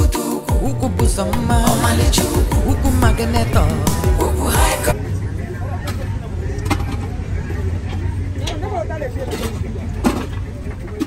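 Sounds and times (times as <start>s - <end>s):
road vehicles rumbling: 0.6s - 11.0s
faint voices speaking: 1.8s - 11.0s.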